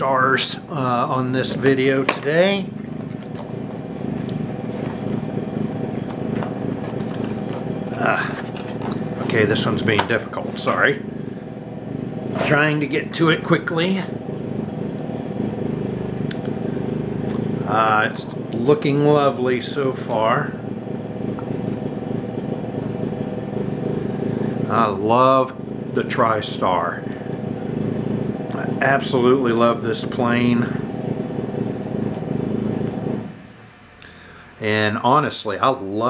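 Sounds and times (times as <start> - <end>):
low mechanical rumble: 0.0 - 36.0.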